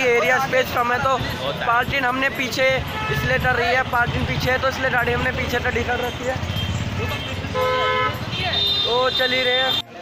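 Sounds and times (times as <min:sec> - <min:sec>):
street traffic: 0:00.0 - 0:10.0
vehicle horn honk: 0:02.9 - 0:03.5, 0:06.5 - 0:09.8.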